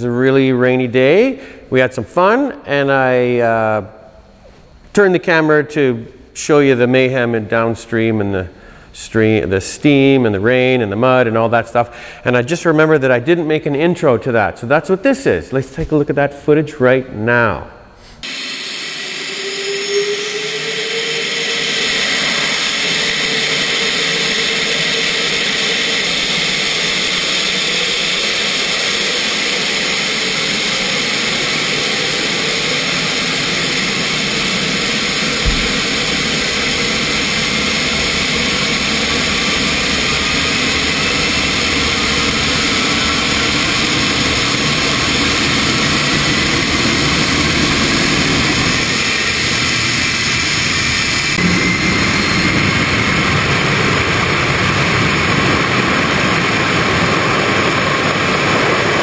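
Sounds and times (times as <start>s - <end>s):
jet engine roaring: 18.2s - 59.0s
low thump: 35.4s - 35.9s.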